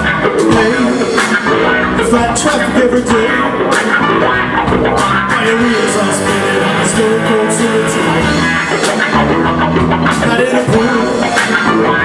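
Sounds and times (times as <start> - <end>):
drums: 0.0 - 12.0
electric guitars: 0.0 - 12.0
keyboard: 0.0 - 12.0.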